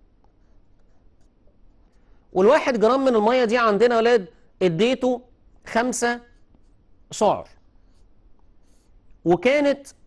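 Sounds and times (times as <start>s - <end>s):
marker pen writing on paper: 0.0s - 2.2s, 6.3s - 9.1s.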